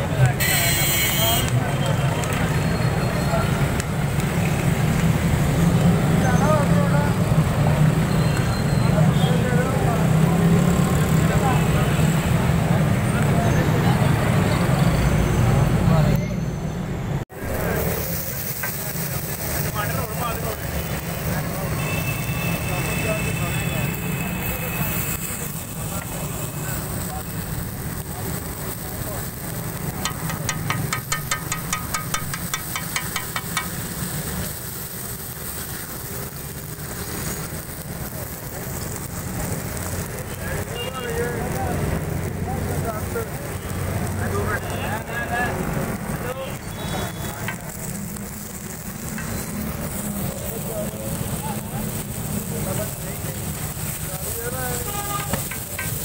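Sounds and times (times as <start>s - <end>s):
food cooking on griddle: 0.0s - 16.1s, 17.3s - 56.0s
people talking: 0.0s - 16.5s, 17.4s - 34.5s, 37.3s - 56.0s
roadside traffic: 0.0s - 56.0s
metal spatula striking griddle: 30.0s - 33.8s, 55.2s - 56.0s.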